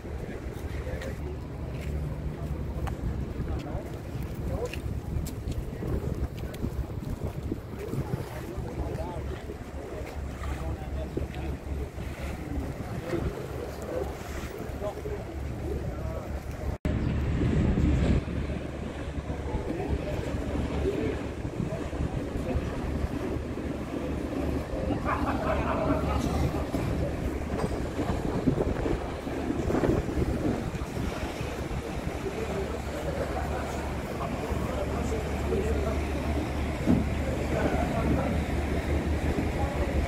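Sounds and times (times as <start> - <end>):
people talking: 0.0 - 40.0
wind buffeting microphone: 0.0 - 40.0.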